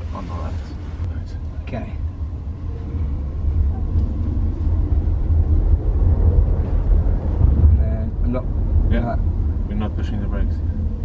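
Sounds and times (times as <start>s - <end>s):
road and tyre noise in car: 0.0s - 11.0s.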